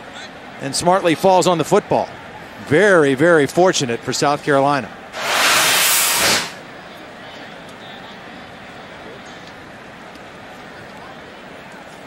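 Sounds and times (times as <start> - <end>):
hissing whoosh transition effect: 5.2 - 6.6.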